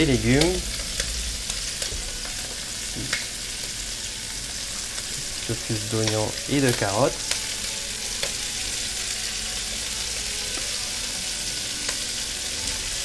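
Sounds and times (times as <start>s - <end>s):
food sizzling in oil: 0.0s - 13.0s.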